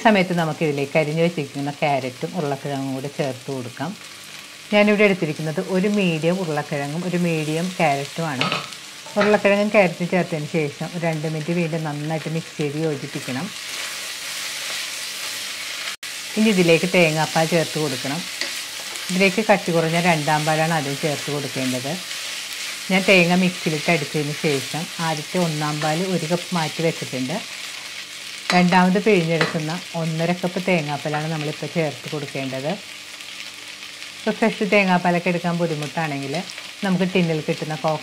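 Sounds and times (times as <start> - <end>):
food sizzling in oil: 0.0 - 38.0
person talking: 9.1 - 13.5, 28.5 - 32.8
food being stirred in a pot: 13.0 - 23.9.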